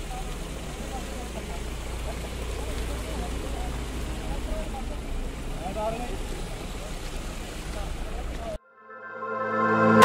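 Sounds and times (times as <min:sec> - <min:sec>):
distant people talking: 0:00.0 - 0:08.6.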